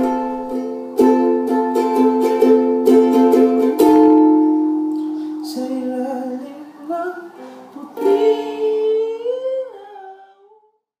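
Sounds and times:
lower vocal harmony: 5.2 - 10.7.

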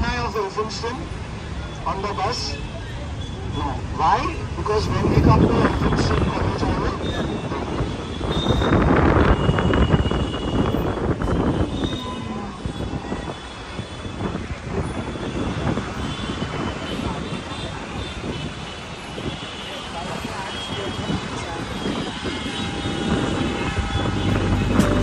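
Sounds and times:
street traffic: 0.0 - 25.0
wind noise: 3.5 - 25.0.

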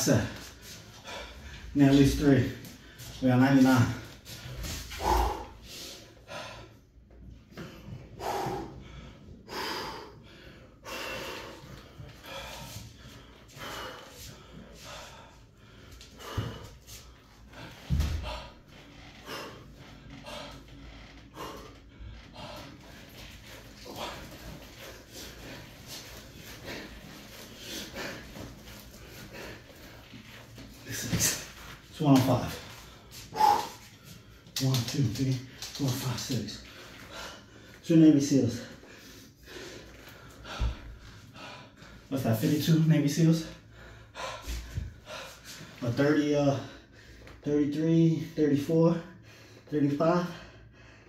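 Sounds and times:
man breathing hard and snorting: 0.0 - 31.8, 32.6 - 34.6, 36.7 - 42.6, 43.4 - 45.8.

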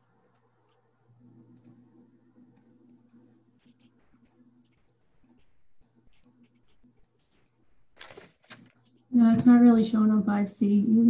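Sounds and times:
faint low hum: 0.0 - 11.0
computer mouse clicks: 1.5 - 1.8, 2.5 - 9.0.

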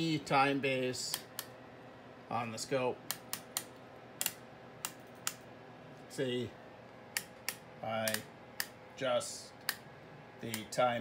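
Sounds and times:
rotary switch detent clicks: 1.0 - 1.6, 3.0 - 5.5, 7.1 - 8.8, 9.6 - 10.8.

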